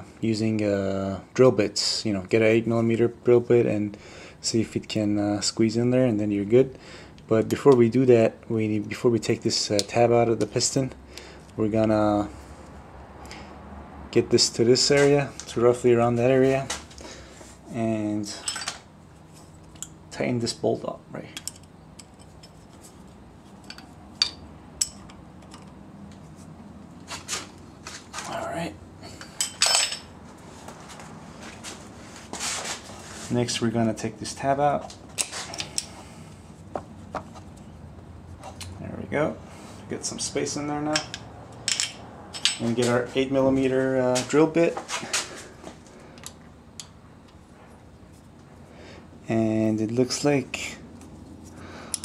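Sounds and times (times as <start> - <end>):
metal tools clinking on metal: 18.3 - 18.8, 23.6 - 25.7, 29.2 - 30.1, 40.9 - 43.0.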